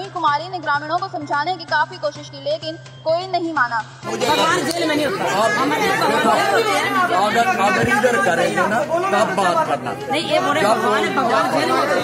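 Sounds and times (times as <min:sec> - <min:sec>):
people arguing loudly: 0:04.0 - 0:12.0.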